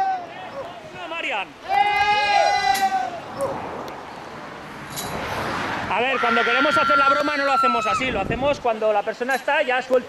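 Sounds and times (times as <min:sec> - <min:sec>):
woman screaming: 0:01.7 - 0:03.2, 0:06.0 - 0:08.0.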